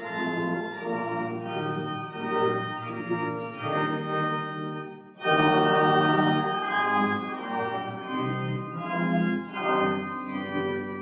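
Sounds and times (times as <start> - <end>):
church organ chords: 0.0 - 11.0.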